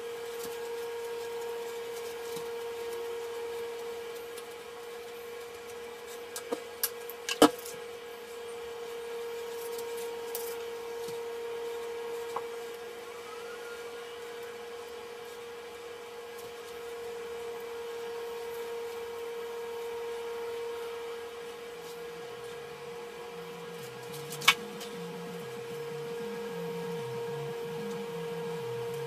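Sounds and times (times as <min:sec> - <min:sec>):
steady mid-pitched hum: 0:00.0 - 0:29.0.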